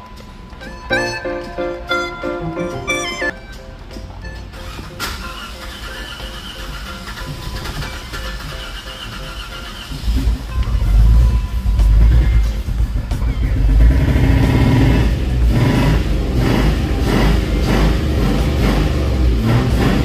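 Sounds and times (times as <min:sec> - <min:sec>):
car engine cranking and running: 0:04.5 - 0:20.0.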